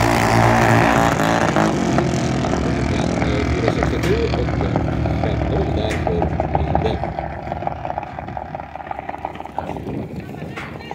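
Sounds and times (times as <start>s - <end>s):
drag racing car engines: 0.0s - 10.9s.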